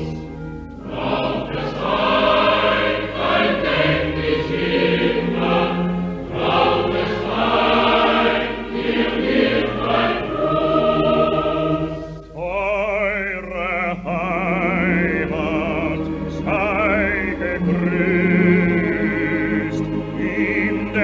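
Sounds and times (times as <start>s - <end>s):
choir singing: 0.0s - 21.0s
orchestra: 0.0s - 21.0s.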